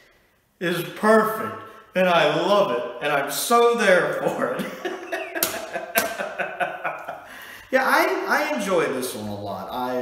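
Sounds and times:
man laughing heartily: 4.2 - 7.7.

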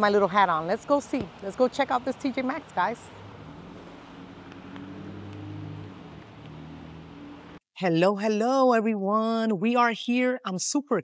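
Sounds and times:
vehicle engine running: 1.8 - 7.6.

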